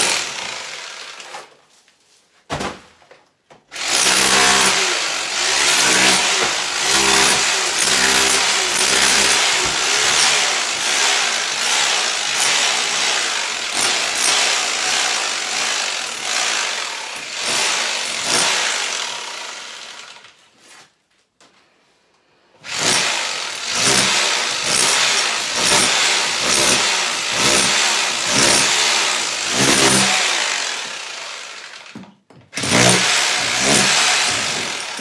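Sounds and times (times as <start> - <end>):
hammer drill chiselling plaster: 0.0 - 1.5, 3.7 - 20.4, 22.6 - 35.0.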